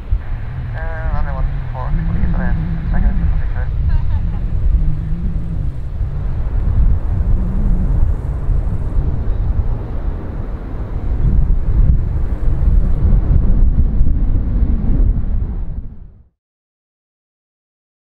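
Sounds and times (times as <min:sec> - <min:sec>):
jet engines rumbling: 0:00.0 - 0:16.3
wind buffeting microphone: 0:00.0 - 0:16.3.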